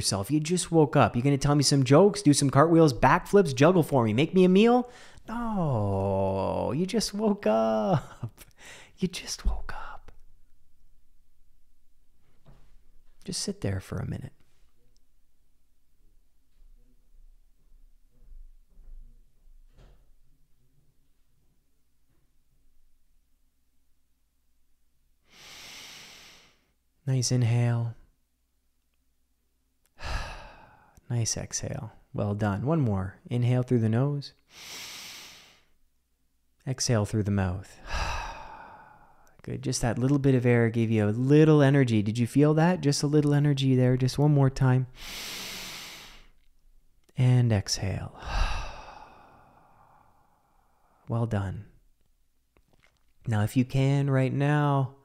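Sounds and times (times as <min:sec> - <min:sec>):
man breathing in deeply: 0:04.9 - 0:05.3, 0:08.5 - 0:09.0, 0:25.2 - 0:26.7, 0:30.0 - 0:31.0, 0:34.5 - 0:35.8, 0:37.8 - 0:39.4, 0:45.0 - 0:46.4, 0:48.2 - 0:51.0.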